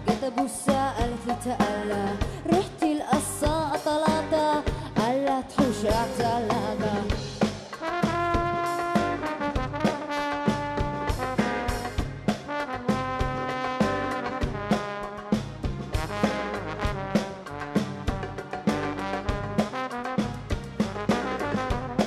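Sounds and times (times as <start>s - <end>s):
electric bass: 0.0s - 5.0s, 5.6s - 9.9s, 10.5s - 22.0s
person singing: 0.0s - 7.2s
drum kit: 0.0s - 22.0s
horn section playing a riff: 7.7s - 22.0s.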